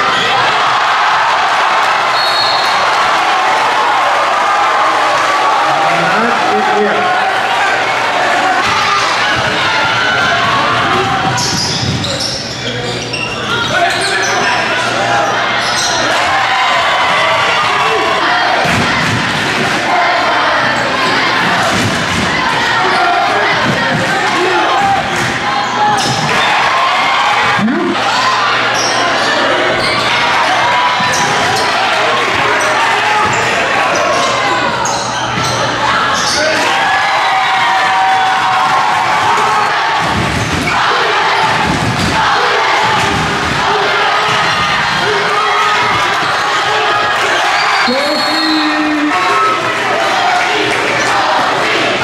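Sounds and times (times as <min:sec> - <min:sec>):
crowd voices: 0:00.0 - 0:52.0
sneakers squeaking on hardwood: 0:11.3 - 0:14.3.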